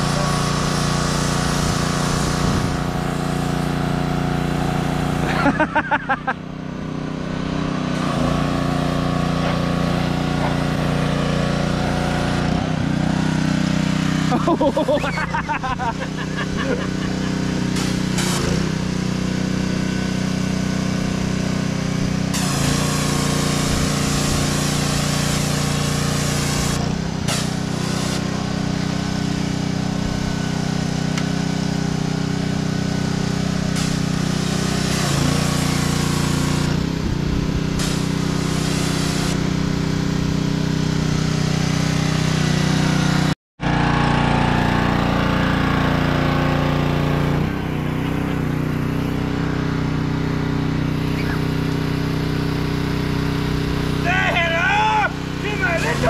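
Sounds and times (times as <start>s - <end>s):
water spray hissing: 0.0s - 5.4s, 13.1s - 19.3s, 22.2s - 29.6s, 33.0s - 40.1s, 55.5s - 56.0s
pressure washer engine running: 0.0s - 56.0s.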